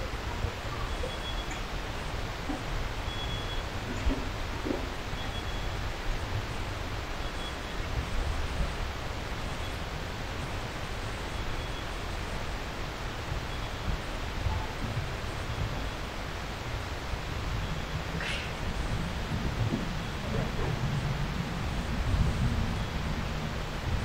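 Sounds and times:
ventilation hiss and rumble: 0.0s - 24.0s
faint high beep: 0.8s - 1.6s, 3.1s - 3.7s.

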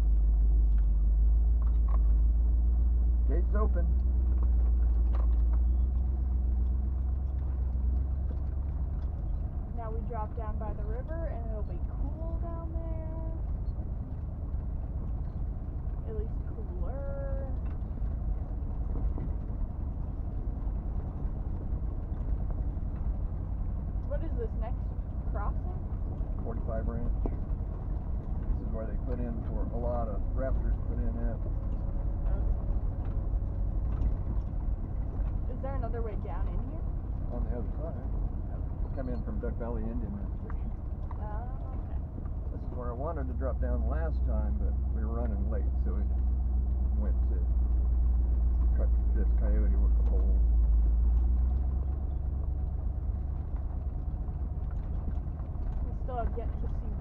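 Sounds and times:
vehicle rumbling on dirt track: 0.0s - 57.0s
indistinct voices: 26.4s - 27.4s, 28.5s - 31.4s, 35.5s - 46.1s.

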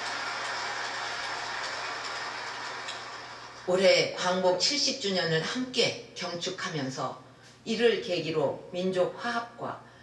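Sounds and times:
audience applauding: 0.0s - 3.7s.

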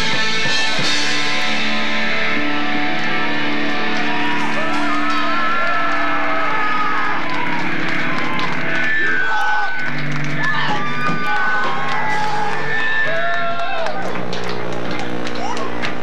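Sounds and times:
live band playing: 0.0s - 5.4s
crowd cheering and whooping: 3.0s - 16.0s.

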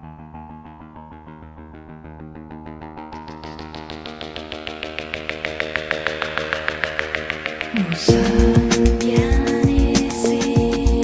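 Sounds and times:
synth-pop music: 5.0s - 11.0s.

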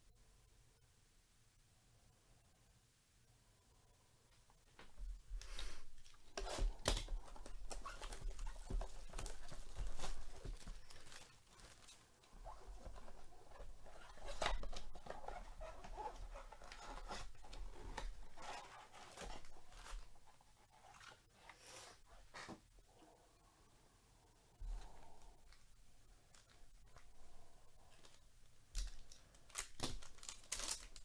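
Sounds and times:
cardboard and wrappers rustling: 4.8s - 21.6s, 26.3s - 31.0s
sharp clicks and crinkles: 5.4s - 20.2s, 26.3s - 31.0s.

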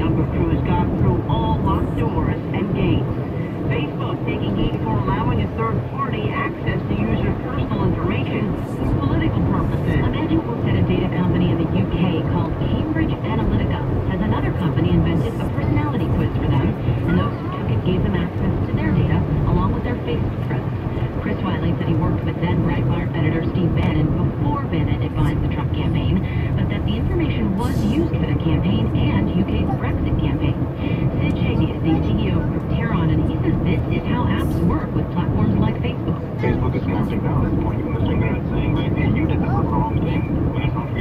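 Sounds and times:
car engine and road rumble: 0.0s - 41.0s
radio news voice talking: 0.0s - 41.0s.

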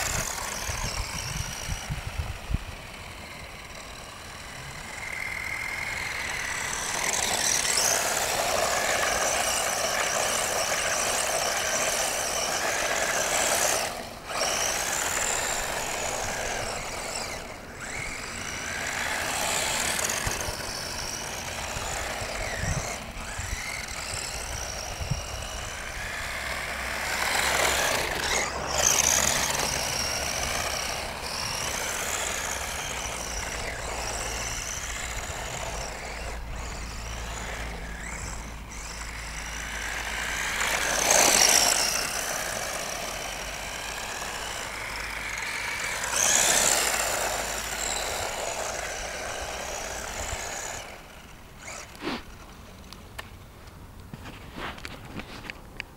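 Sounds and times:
rc car motor and gears whining: 0.0s - 55.9s.

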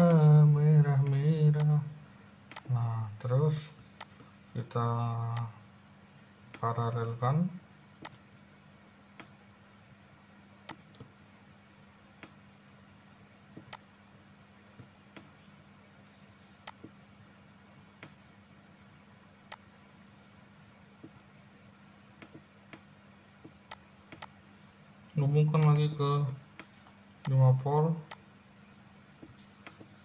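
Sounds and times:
faint low hum: 0.0s - 30.0s
computer mouse clicking: 2.5s - 2.7s, 8.0s - 8.2s, 10.7s - 11.1s, 13.6s - 13.9s, 16.6s - 17.0s, 22.2s - 24.4s.

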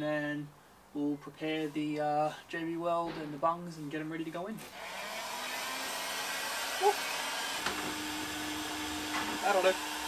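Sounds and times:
heat gun fan hissing: 4.7s - 10.0s.

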